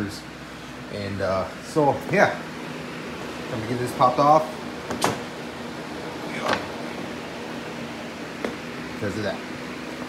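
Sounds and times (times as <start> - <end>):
box fan humming: 0.0 - 10.0.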